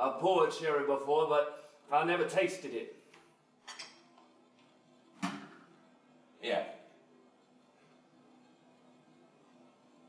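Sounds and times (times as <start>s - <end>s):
faint background music: 0.0s - 10.0s.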